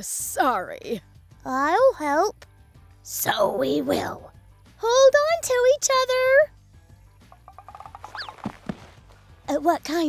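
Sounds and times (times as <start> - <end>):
soft thuds: 7.6 - 9.2.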